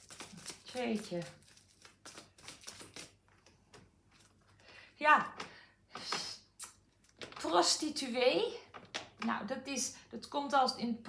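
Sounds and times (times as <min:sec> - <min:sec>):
cards shuffling: 0:00.0 - 0:04.6.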